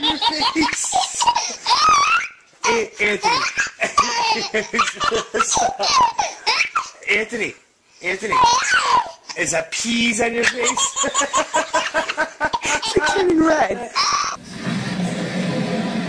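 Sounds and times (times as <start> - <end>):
baby laughing: 0.0 - 7.0, 8.2 - 9.4, 10.4 - 14.4.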